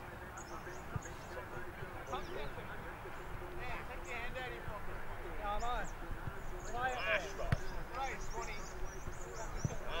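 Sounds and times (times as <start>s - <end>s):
ball thump: 7.5s - 7.8s.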